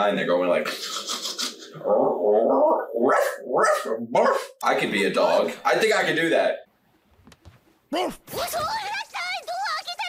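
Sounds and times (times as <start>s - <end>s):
man imitating dog noises: 0.9s - 4.6s.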